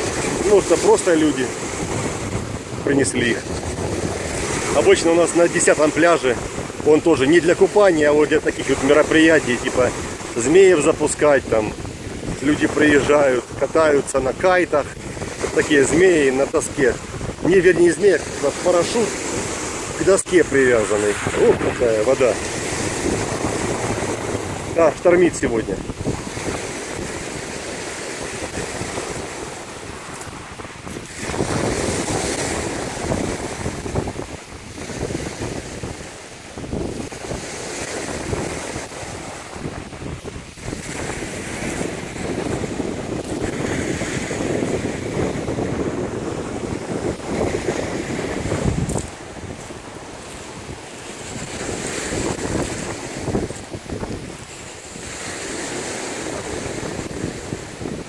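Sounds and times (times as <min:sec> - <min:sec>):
waves breaking on pebbly shore: 0:00.0 - 0:58.0
wind buffeting microphone: 0:00.0 - 0:58.0.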